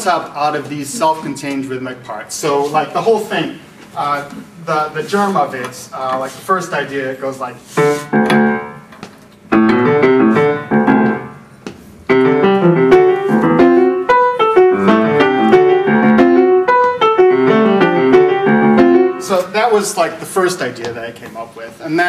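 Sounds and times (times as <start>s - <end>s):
solo grand piano: 7.8s - 8.9s, 9.5s - 19.5s.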